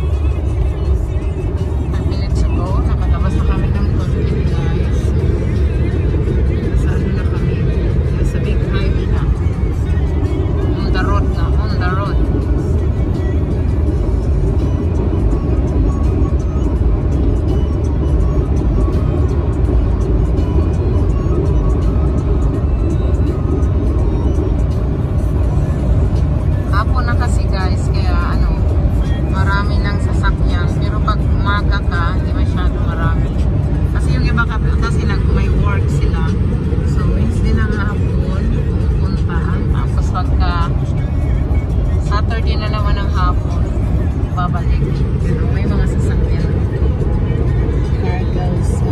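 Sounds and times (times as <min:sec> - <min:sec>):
road and engine rumble: 0:00.0 - 0:48.9.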